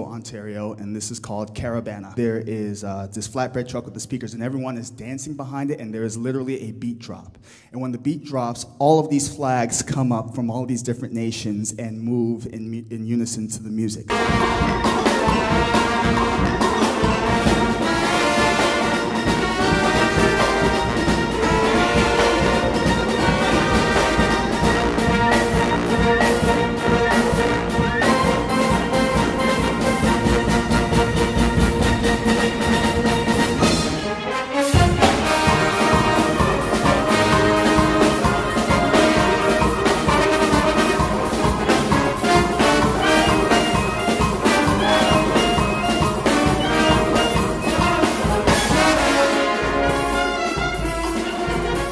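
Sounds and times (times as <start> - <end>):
concert wind band playing: 14.1 - 51.9
percussion beat: 14.1 - 51.9.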